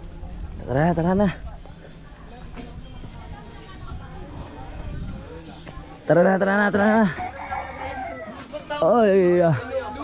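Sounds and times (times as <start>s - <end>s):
rooster crowing: 7.1s - 8.4s.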